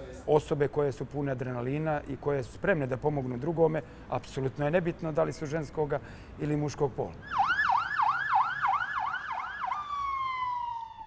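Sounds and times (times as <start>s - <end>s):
fire engine siren: 7.2s - 11.0s.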